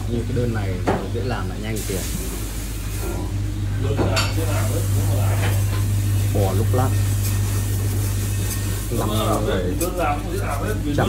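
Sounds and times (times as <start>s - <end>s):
extractor fan hum and hiss: 0.0s - 11.0s.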